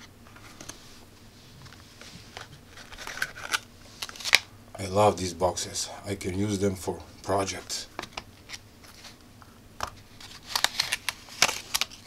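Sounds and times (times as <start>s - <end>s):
plastic bag crinkling: 10.0s - 12.0s.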